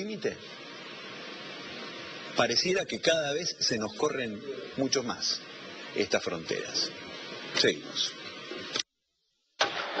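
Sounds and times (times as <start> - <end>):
dense background sound: 0.0 - 8.8
loud dense broadcast opener: 0.0 - 8.8.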